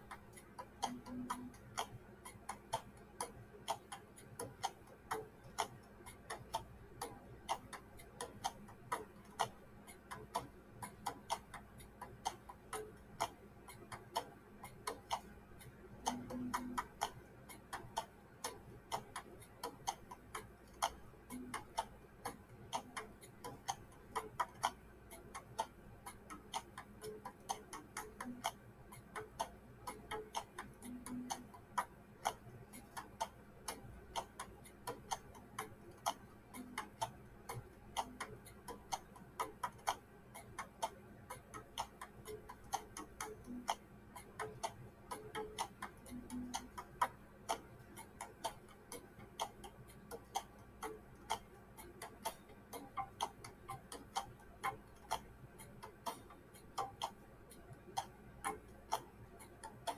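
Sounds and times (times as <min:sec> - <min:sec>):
light ticking clicks: 0:00.0 - 0:59.9.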